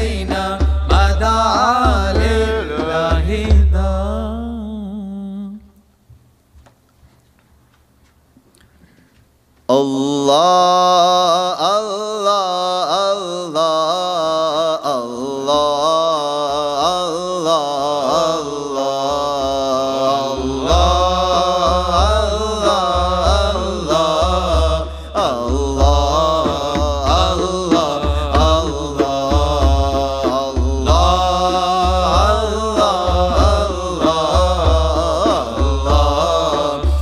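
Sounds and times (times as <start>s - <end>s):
person chanting: 0.0s - 5.8s, 9.7s - 37.0s
low pulsing beat: 20.4s - 37.0s.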